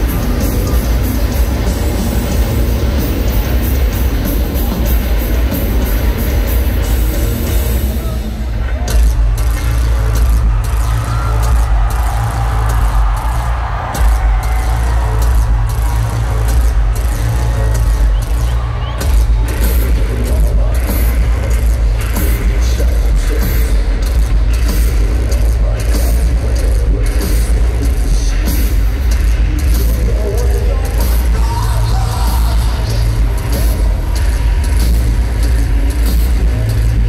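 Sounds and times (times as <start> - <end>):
crowd noise and shouting: 0.0 - 37.0.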